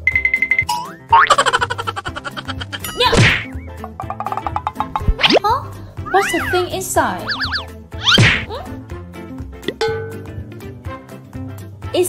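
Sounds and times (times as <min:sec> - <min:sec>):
cartoon boing: 0:01.1 - 0:01.6, 0:07.3 - 0:08.5
loud whack with falling swish: 0:03.1 - 0:03.6, 0:07.3 - 0:08.5.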